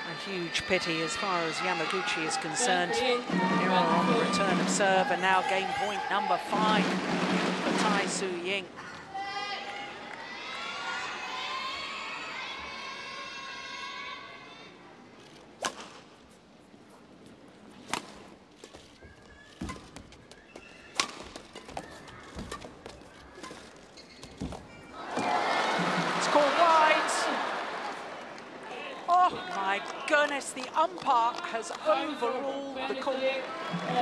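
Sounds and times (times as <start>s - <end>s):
crowd calling out: 0.0s - 8.2s, 24.9s - 30.2s, 33.0s - 34.0s
loud crowd outcry: 9.0s - 14.5s, 25.0s - 30.1s, 33.4s - 34.0s
racket striking shuttlecock: 21.0s - 21.4s.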